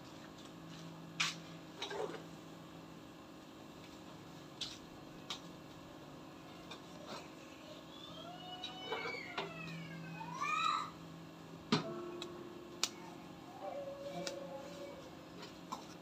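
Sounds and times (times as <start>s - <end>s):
animal cries: 13.0s - 15.2s.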